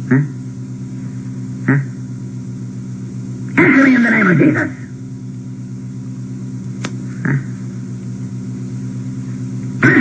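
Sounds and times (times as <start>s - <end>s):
electrical mains hum: 0.0s - 10.0s
sharp click: 6.8s - 7.0s.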